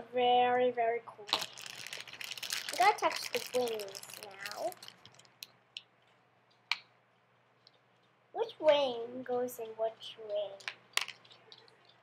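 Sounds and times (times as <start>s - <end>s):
plastic toy parts clicking: 10.6s - 12.0s.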